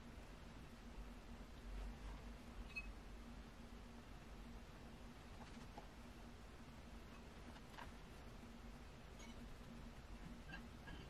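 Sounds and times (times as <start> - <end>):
low steady hum: 0.0 - 11.0
faint high chirp: 2.6 - 3.0.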